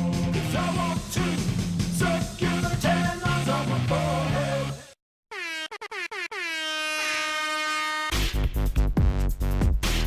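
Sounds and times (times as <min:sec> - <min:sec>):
music: 0:00.0 - 0:05.0, 0:08.1 - 0:10.0
buzzy electronic horn tone: 0:05.3 - 0:08.3.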